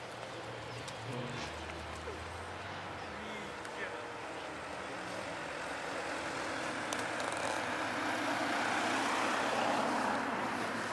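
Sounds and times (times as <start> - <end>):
car engine running hard: 2.0 - 10.9.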